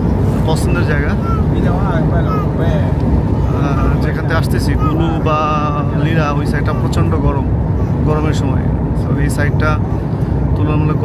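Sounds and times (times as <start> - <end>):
vehicle low rumble: 0.0 - 11.0
man speaking: 0.4 - 9.9, 10.6 - 11.0.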